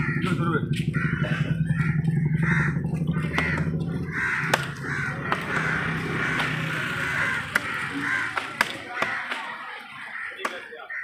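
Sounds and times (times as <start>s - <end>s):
crows cawing: 0.0s - 11.0s.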